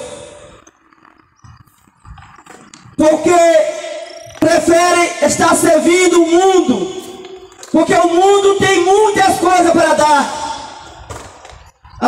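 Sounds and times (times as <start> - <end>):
faint outdoor background noise: 0.0 - 12.0.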